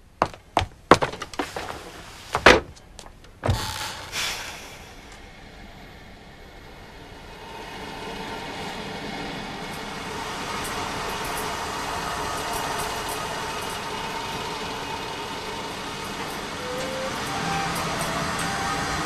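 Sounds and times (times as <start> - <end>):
steady mechanical rushing noise: 3.4 - 19.0.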